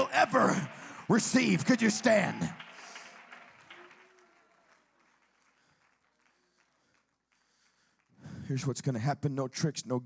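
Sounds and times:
congregation noise: 0.0s - 3.7s
light clapping: 1.1s - 8.2s.

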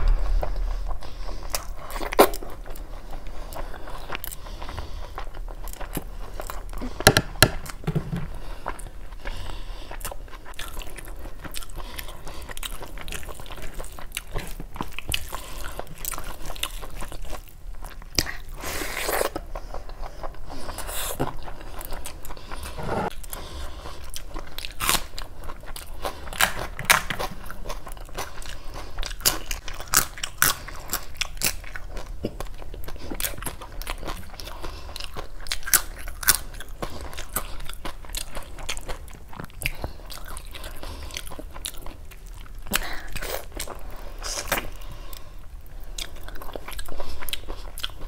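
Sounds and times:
chewing and biting food: 7.6s - 48.0s.

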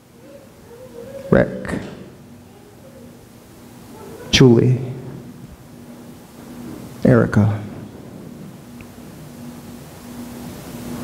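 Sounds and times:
faint steady hum: 0.0s - 11.0s
low even hiss: 0.0s - 11.0s.

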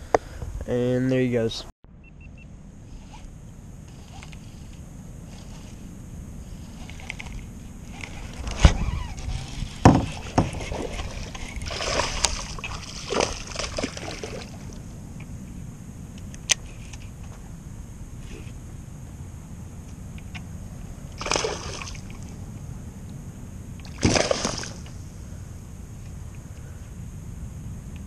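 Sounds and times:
water splashing off paddle: 9.9s - 14.7s, 23.9s - 24.8s.

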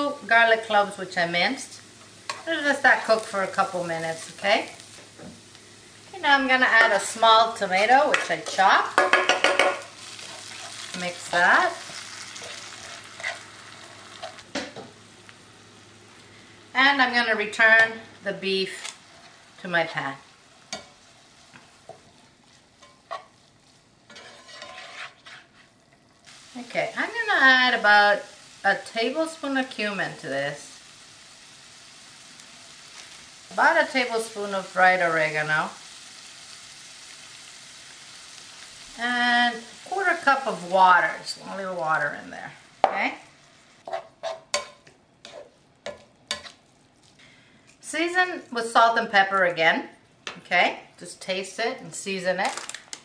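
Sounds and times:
vegetables sizzling in oil: 0.0s - 53.0s
spatula striking pan: 8.1s - 9.9s, 20.7s - 21.0s, 43.9s - 44.9s, 45.8s - 46.6s.

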